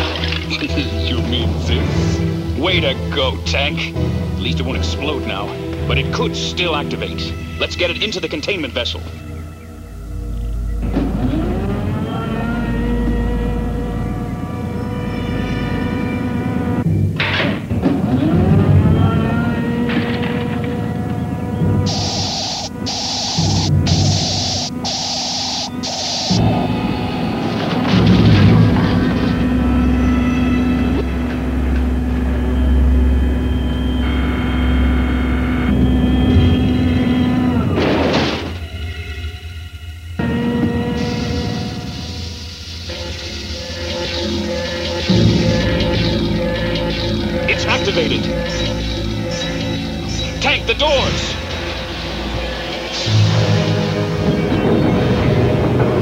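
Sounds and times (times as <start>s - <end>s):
synthesizer held tones: 18.2s - 37.8s, 38.6s - 55.2s
cartoon sweep effects: 21.6s - 37.5s
short bright bursts: 21.9s - 26.7s.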